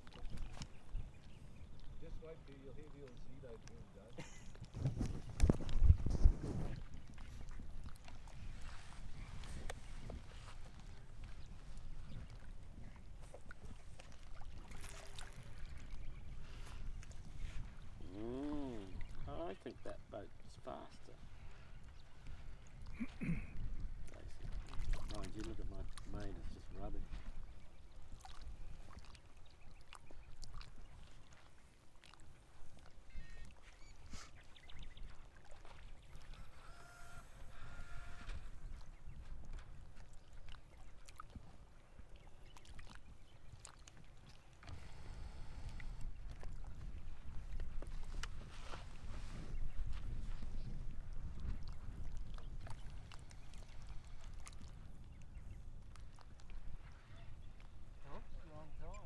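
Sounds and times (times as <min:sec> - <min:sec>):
wind buffeting microphone: 0:04.4 - 0:29.1, 0:34.6 - 0:59.0.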